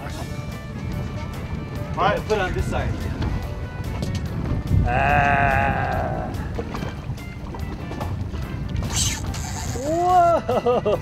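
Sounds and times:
background music: 0.0 - 11.0
wind rumble on microphone: 0.0 - 11.0.

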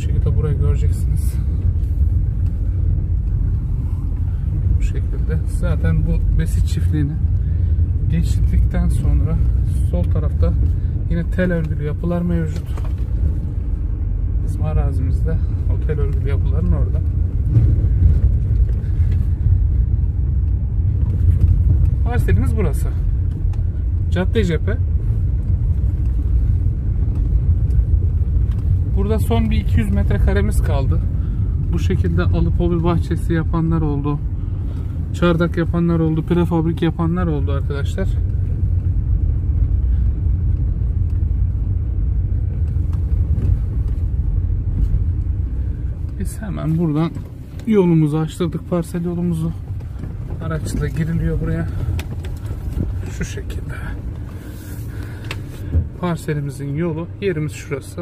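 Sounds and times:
car engine and tyres on dirt road: 0.0 - 58.0.

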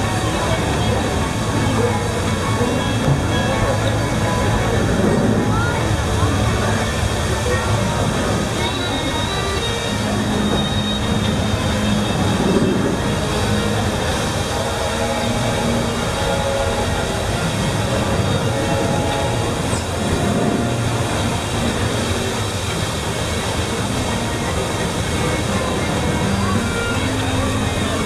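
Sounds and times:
paddlewheel churning water: 0.0 - 28.0.

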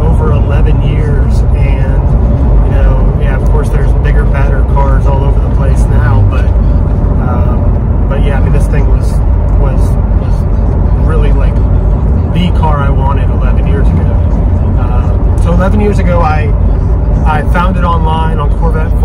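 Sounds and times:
car engine drone: 0.0 - 19.0
man talking: 0.0 - 19.0
road noise: 0.0 - 19.0.

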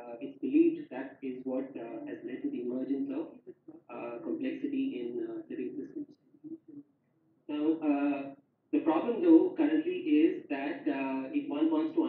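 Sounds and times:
man talking: 0.0 - 6.8, 7.5 - 12.0.

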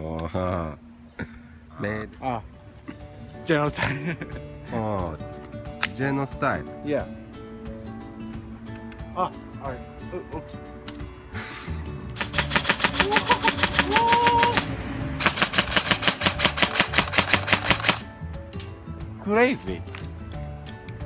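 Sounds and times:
airsoft gun automatic fire: 12.2 - 18.0.

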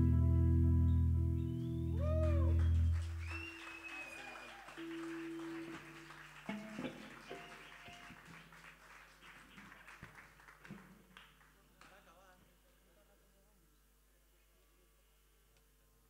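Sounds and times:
whistle: 1.4 - 6.0, 7.3 - 8.1
audience applause: 2.0 - 11.9.

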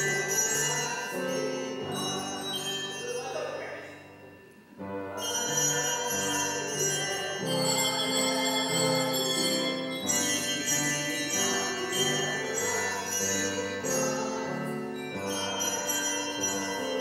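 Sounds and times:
handbell choir ringing chords: 0.0 - 17.0.

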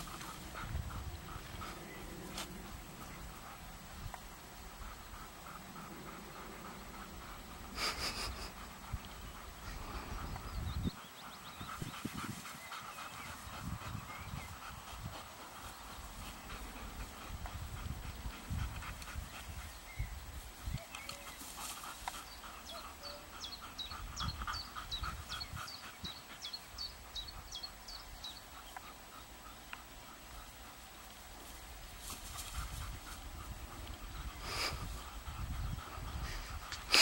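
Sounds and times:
dogs panting: 0.0 - 37.0.

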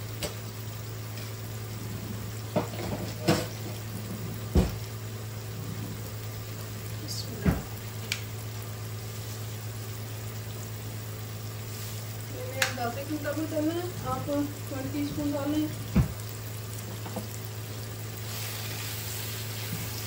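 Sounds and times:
low hum: 0.0 - 17.9
food sizzling in a frying pan: 0.0 - 20.0.

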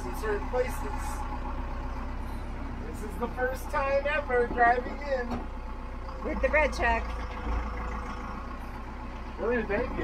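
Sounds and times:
road noise: 0.0 - 10.0
truck engine rumble: 0.0 - 10.0.

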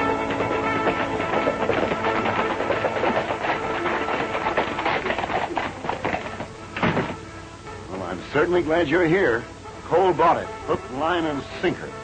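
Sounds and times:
horses' hooves on dirt: 0.0 - 7.4
film score music: 0.0 - 12.0.

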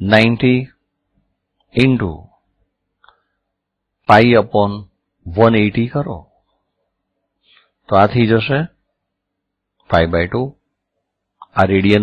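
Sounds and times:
man speaking: 0.0 - 0.8, 1.7 - 2.4, 4.0 - 6.3, 7.9 - 8.8, 9.9 - 10.6, 11.4 - 12.0.

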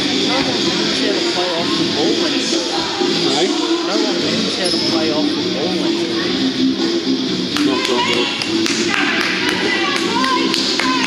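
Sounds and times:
background music: 0.0 - 11.0
sneaker squeaks: 4.6 - 5.1.

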